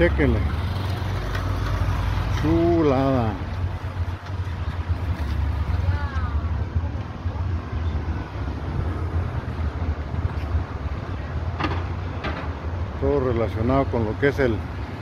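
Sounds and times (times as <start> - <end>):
outdoor rumble: 0.0 - 15.0.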